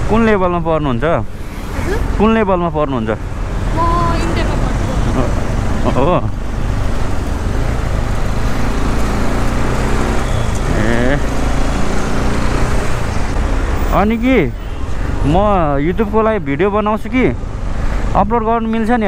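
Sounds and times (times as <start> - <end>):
motorcycle running: 0.0 - 18.1
road and traffic noise: 0.0 - 19.0.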